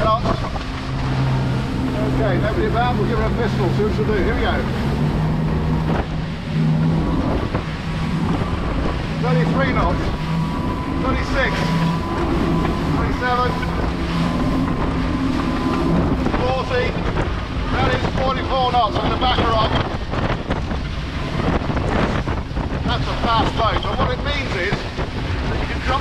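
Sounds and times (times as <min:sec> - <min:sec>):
hull rushing through water: 0:00.0 - 0:26.0
outboard engines at full throttle: 0:00.0 - 0:26.0
wind buffeting microphone: 0:00.0 - 0:26.0.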